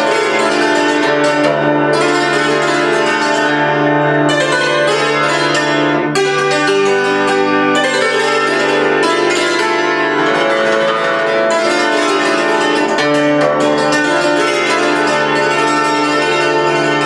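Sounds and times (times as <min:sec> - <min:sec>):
cimbalom played with wooden sticks: 0:00.0 - 0:17.0.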